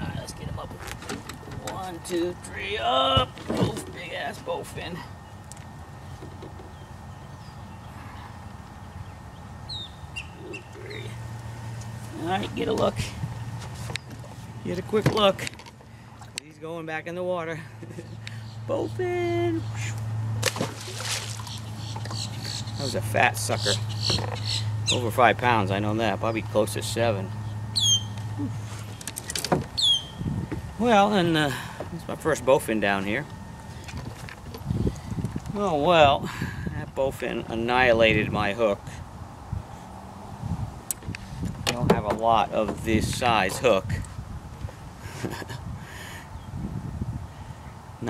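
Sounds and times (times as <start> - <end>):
steady low hum: 0.0 - 48.0
high bird chirps: 8.8 - 11.2, 23.6 - 25.1, 27.4 - 28.3, 29.8 - 30.3.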